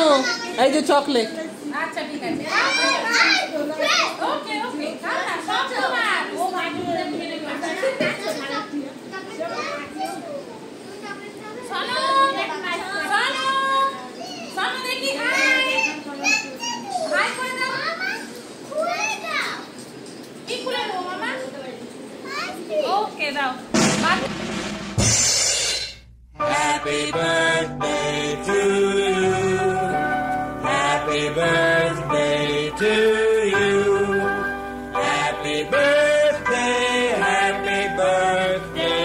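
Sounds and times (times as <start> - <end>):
children chattering: 0.0 - 23.4.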